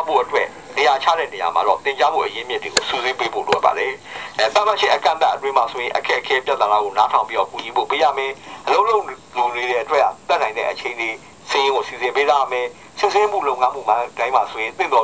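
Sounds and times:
person speaking through laptop speaker: 0:00.0 - 0:15.0.

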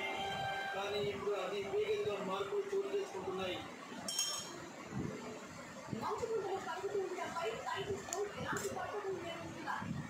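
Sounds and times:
utensil clinking on metal bowl: 0:04.1 - 0:04.6.

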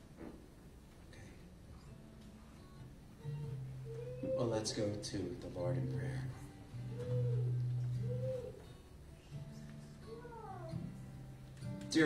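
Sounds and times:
quiet live band music: 0:00.0 - 0:12.0.

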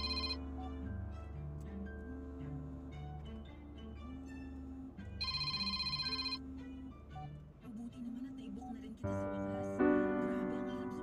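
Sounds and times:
electronic ringing trill: 0:00.0 - 0:00.4, 0:05.2 - 0:06.4
soft background music: 0:00.0 - 0:11.0.

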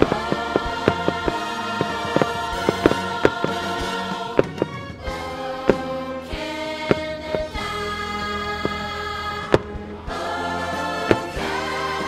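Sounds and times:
choral music: 0:00.0 - 0:12.0.

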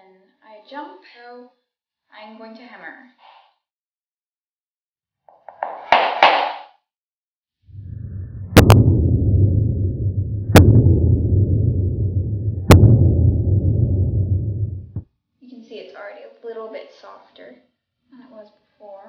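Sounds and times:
sharp crack: 0:07.8 - 0:15.0.

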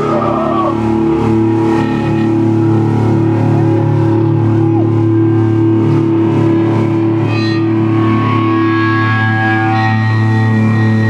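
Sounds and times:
electric guitar and bass droning: 0:00.0 - 0:11.0.

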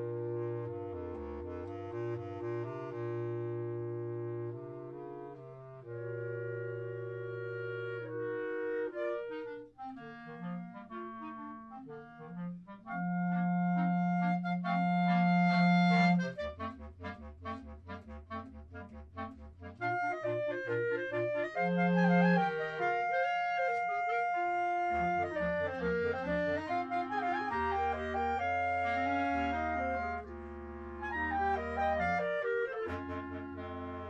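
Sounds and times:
clarinet quartet playing: 0:00.0 - 0:34.0.

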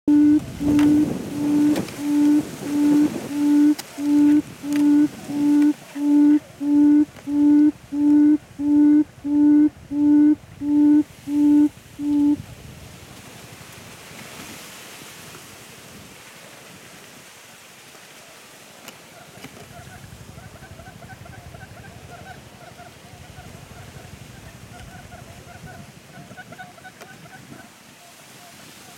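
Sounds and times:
faint fluttering trill: 0:00.1 - 0:12.4
quail hooting: 0:00.1 - 0:12.4.

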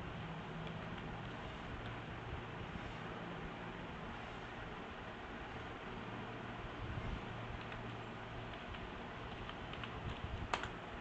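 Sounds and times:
computer keyboard typing: 0:07.5 - 0:10.9.

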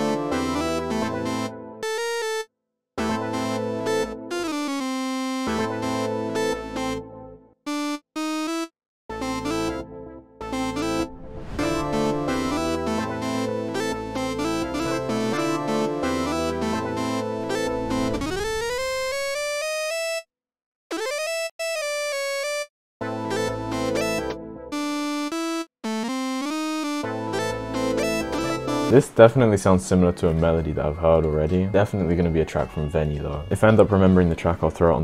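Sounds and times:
synth lead melody with pitch slides: 0:00.0 - 0:02.4, 0:03.0 - 0:19.7, 0:25.9 - 0:29.0
synthesizer chords and bass: 0:00.0 - 0:02.4, 0:03.0 - 0:08.5, 0:09.1 - 0:19.5, 0:23.0 - 0:25.0, 0:26.8 - 0:29.0.

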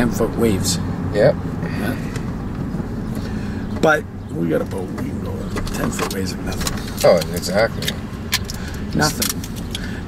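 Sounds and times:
car engine hum from inside cabin: 0:00.0 - 0:10.0.

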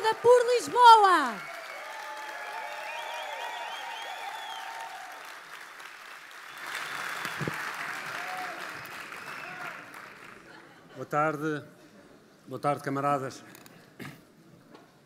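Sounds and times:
crowd cheering: 0:00.0 - 0:10.5
crowd applauding: 0:00.0 - 0:10.7.

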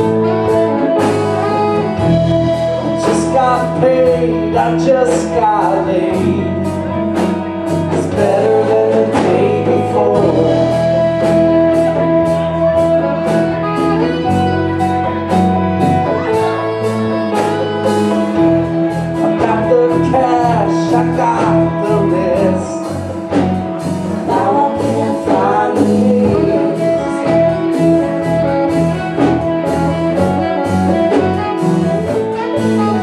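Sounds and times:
bass guitar: 0:00.0 - 0:33.0
drum kit: 0:00.0 - 0:33.0
electric guitars: 0:00.0 - 0:33.0
lead melody bending in pitch: 0:00.0 - 0:33.0
congas: 0:07.1 - 0:33.0.

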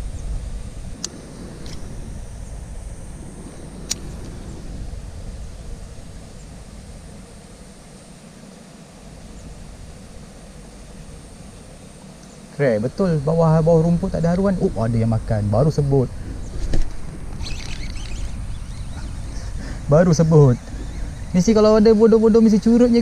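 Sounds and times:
steady low rumble: 0:00.0 - 0:23.0
fishing reel clicks: 0:17.3 - 0:19.0.

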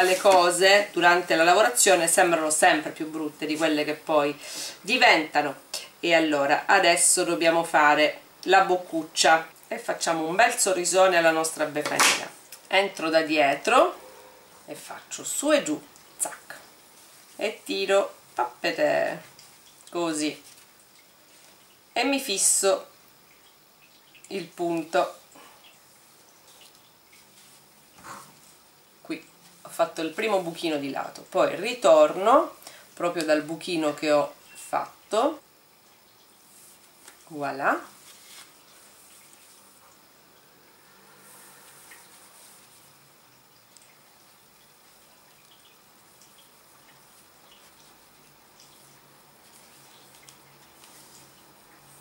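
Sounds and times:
steady low hiss: 0:00.0 - 0:52.0
fabric rustling: 0:36.5 - 0:39.8.

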